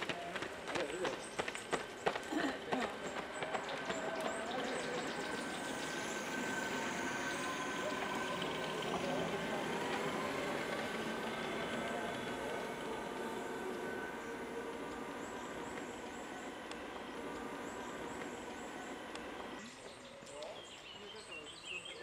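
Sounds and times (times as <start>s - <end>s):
distant voices: 0.0s - 22.0s
outdoor background noise: 0.0s - 22.0s.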